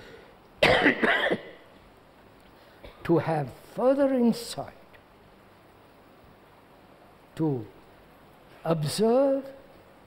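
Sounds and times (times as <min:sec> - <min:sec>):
man coughing: 0:00.6 - 0:01.6, 0:02.8 - 0:03.1.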